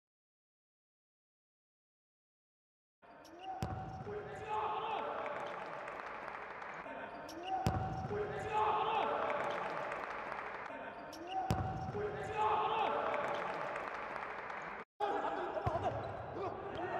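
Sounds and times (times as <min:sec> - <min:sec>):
people shouting: 0:03.4 - 0:05.7, 0:08.1 - 0:09.7, 0:12.0 - 0:13.6.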